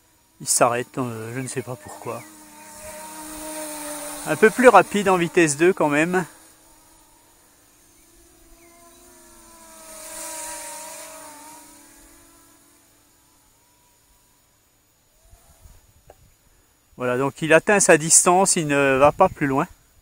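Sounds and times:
drone propellers whining: 0.0 - 15.9.

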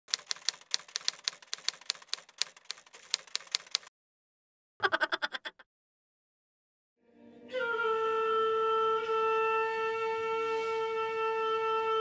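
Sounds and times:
typewriter keystroke clicks: 0.1 - 3.9.

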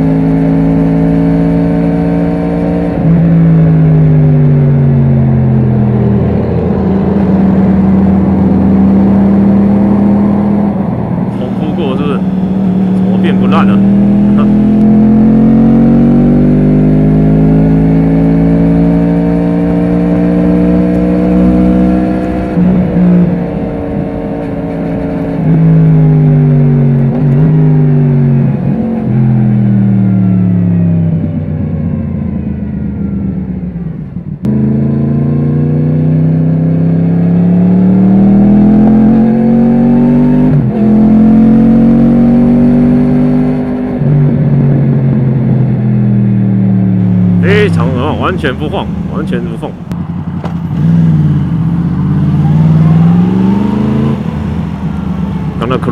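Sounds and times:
motorcycle engine revving: 0.0 - 55.9.

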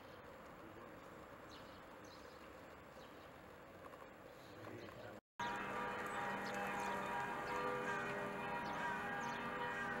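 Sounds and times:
church bells ringing: 5.4 - 10.0.

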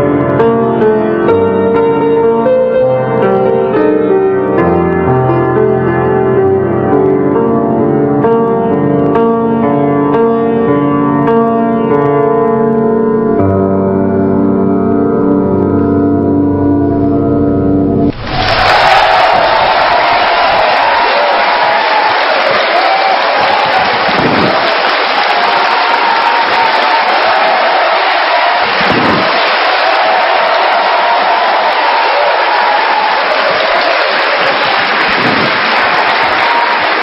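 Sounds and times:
audience clapping: 18.1 - 37.0
audience shouting and cheering: 18.1 - 37.0.

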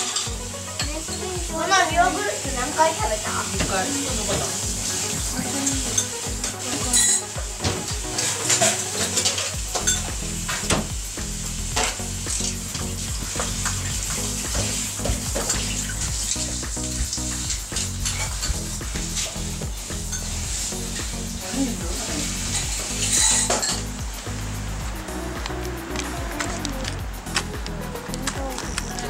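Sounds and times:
dishes and utensils clinking: 0.0 - 3.0, 3.6 - 10.9, 13.4 - 20.4, 22.0 - 24.0
food sizzling in a pan: 0.0 - 29.0.

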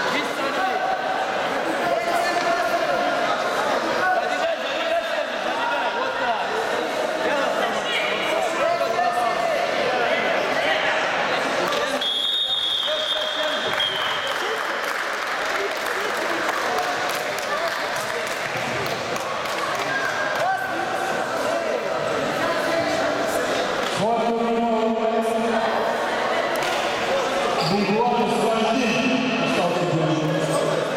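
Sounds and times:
referee's whistle blast: 12.0 - 14.3
crowd applause: 13.4 - 20.6
people talking and calling out: 15.4 - 30.9.

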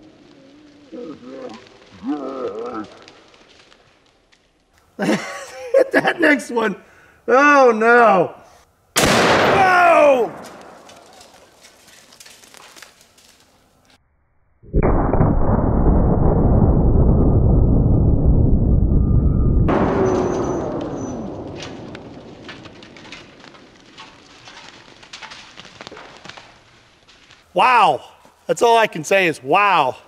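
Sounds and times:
slowed rifle shot rumble: 9.0 - 9.6, 14.7 - 24.0.

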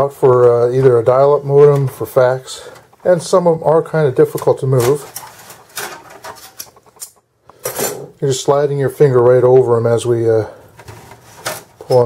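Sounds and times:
metal plates scraping and clicking: 1.6 - 8.2.

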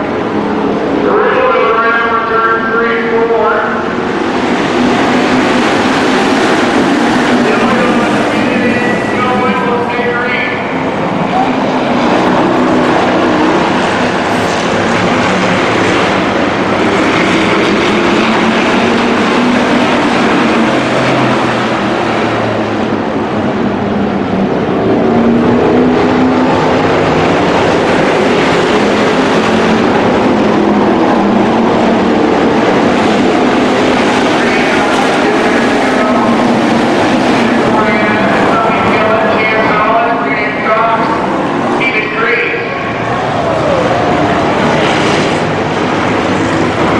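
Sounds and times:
race car engines: 0.0 - 46.9.

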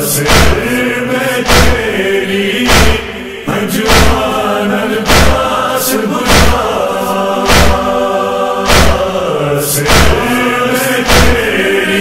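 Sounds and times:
men chanting a lament: 0.0 - 12.0
loud percussive strikes: 0.2 - 11.8.

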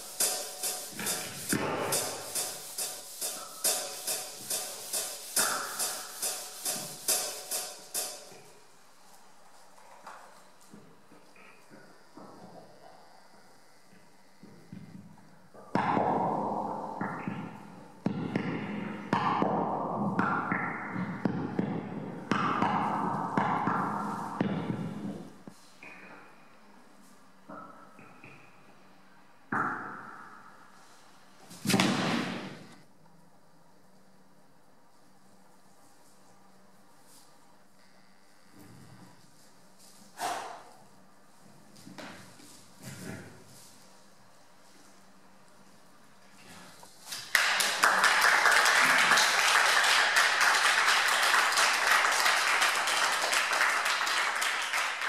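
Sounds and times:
people applauding: 47.3 - 55.0.

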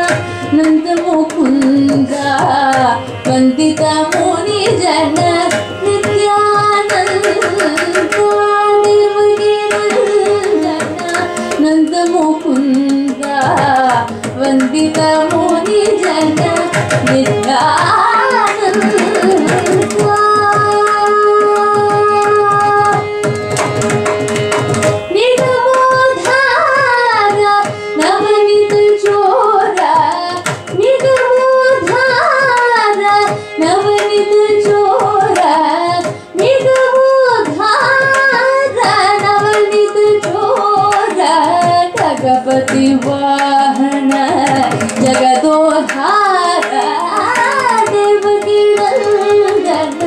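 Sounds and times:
violin: 0.0 - 50.0
woman singing: 0.0 - 50.0.

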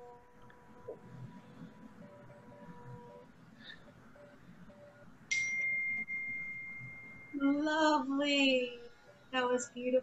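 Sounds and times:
small bell ringing: 5.3 - 7.5
voice: 7.4 - 10.0.

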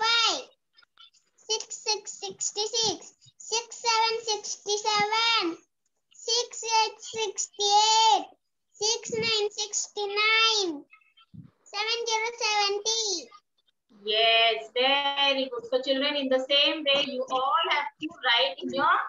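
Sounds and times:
child reciting in sing-song voice: 0.0 - 13.4.

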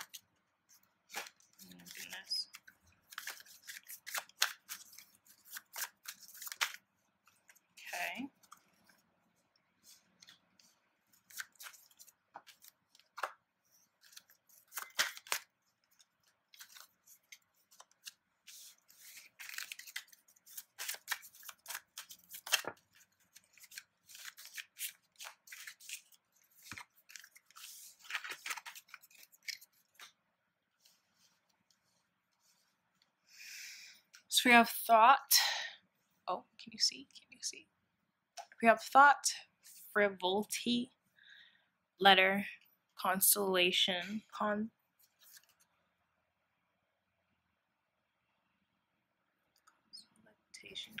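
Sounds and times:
cards snapping and rustling: 0.8 - 7.6, 11.2 - 13.4, 14.0 - 30.2.

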